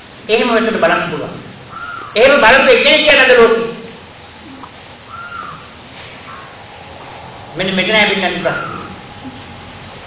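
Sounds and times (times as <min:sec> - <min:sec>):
low room noise hiss: 0:00.0 - 0:10.0
faint bird call: 0:01.7 - 0:02.2, 0:04.4 - 0:06.8.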